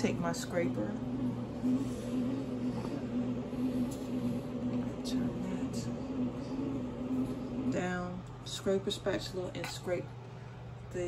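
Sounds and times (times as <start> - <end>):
bread machine motor humming: 0.0 - 9.5.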